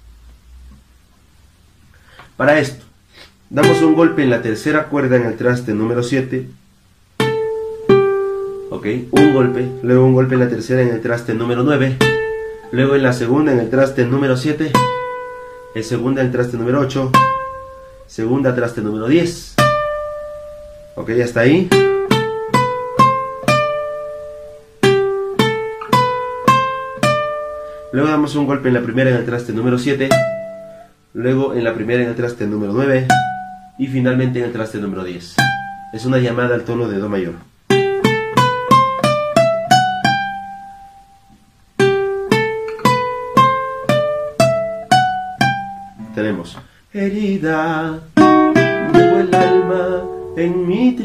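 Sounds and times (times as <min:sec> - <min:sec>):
guitar picking single notes: 0:03.5 - 0:46.8, 0:47.6 - 0:51.0
guitar single-note run: 0:03.6 - 0:05.1, 0:07.2 - 0:18.1, 0:48.2 - 0:51.0.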